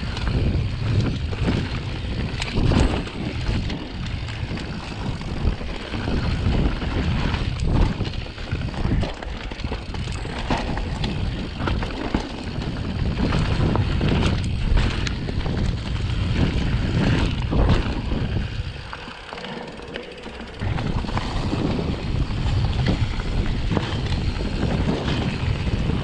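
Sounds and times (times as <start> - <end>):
bike clicks and knocks: 0.0 - 26.0
tyres rolling over dirt: 0.0 - 26.0
wind rushing over microphone: 0.0 - 26.0.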